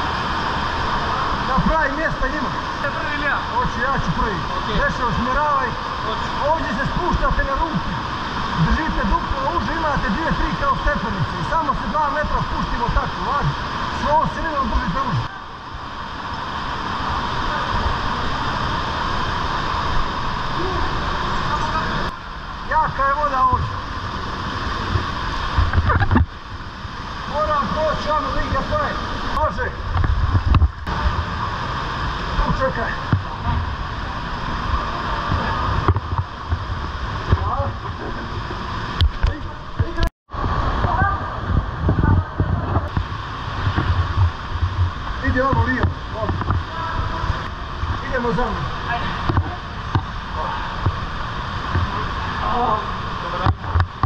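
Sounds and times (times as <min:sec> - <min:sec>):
rushing mountain stream: 0:00.0 - 0:54.0.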